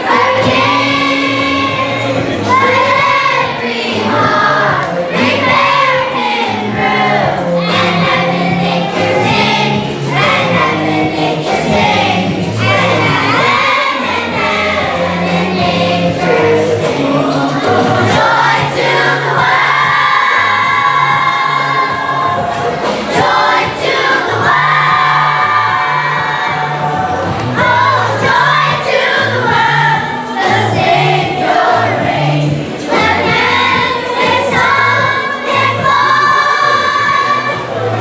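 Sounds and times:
children's choir singing: 0.0 - 38.0
low bass notes: 0.0 - 38.0.

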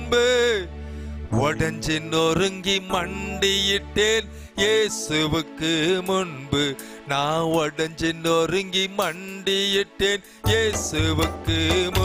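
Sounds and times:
keyboard accompaniment: 0.0 - 12.0
man singing worship song: 0.0 - 12.0.

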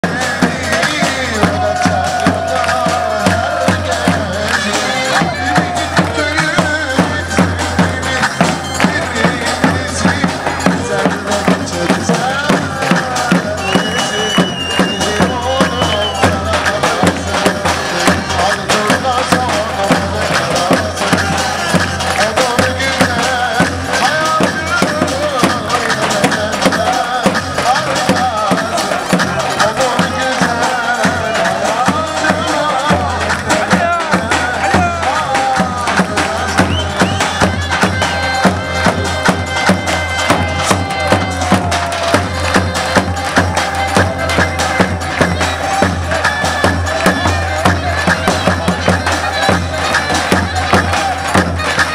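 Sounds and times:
bass drum dance rhythm: 0.0 - 51.9
reedy wind instrument melody: 0.0 - 51.9.

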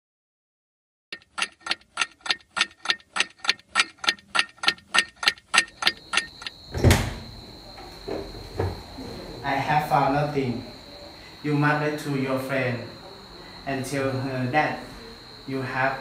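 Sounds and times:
clock ticking: 1.1 - 6.6
steady high whine: 4.1 - 16.0
loud heavy thump: 6.7 - 7.4.

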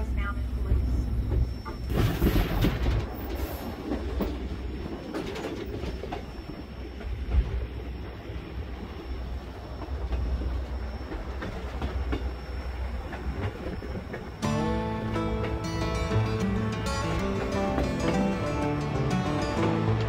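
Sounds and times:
railway car rumbling: 0.0 - 20.0
wheels clacking on rails: 0.0 - 20.0.

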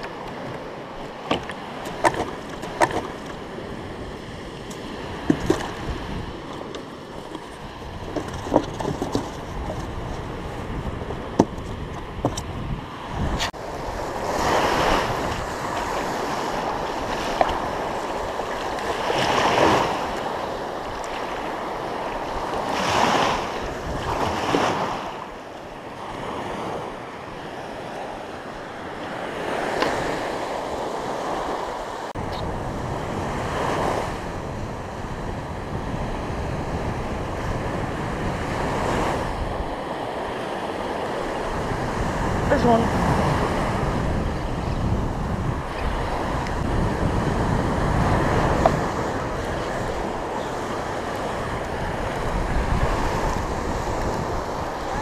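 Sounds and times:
surf breaking on beach: 0.0 - 55.0
wind buffeting microphone: 0.0 - 55.0.

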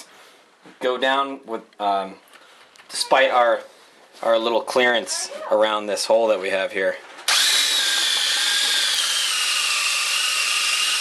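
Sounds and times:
cutter grinding on plastic: 7.3 - 11.0
drill motor whine: 7.3 - 11.0.

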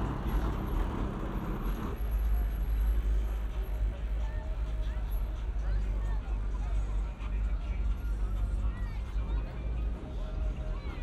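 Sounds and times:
car engine rumbling at low speed: 0.0 - 11.0.

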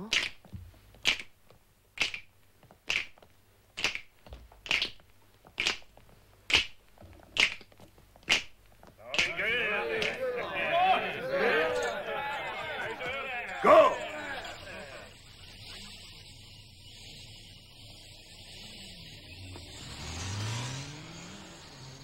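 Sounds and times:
babble of voices: 9.0 - 15.2.

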